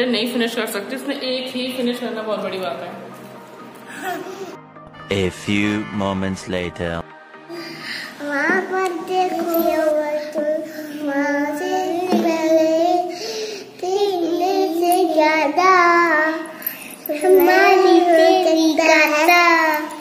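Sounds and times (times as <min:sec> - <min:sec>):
girl laughing: 0:03.9 - 0:04.6
girls singing: 0:17.2 - 0:19.8.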